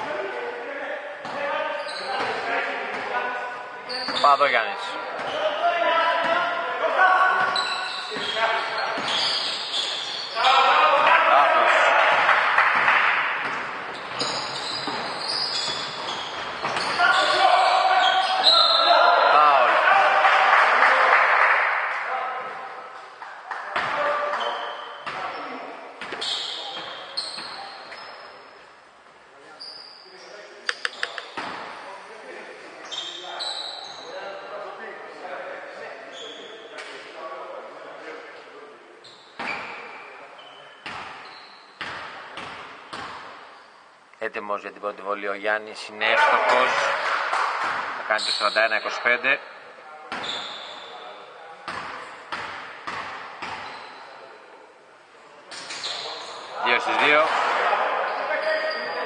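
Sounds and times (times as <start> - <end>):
players' voices: 0.0 - 28.5, 44.2 - 59.0.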